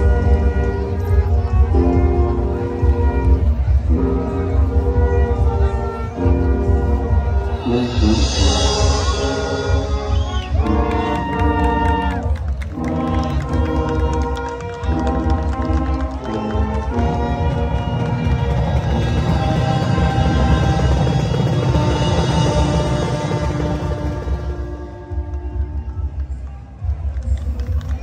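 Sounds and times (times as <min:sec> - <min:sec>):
brass chords: 0:00.0 - 0:28.0.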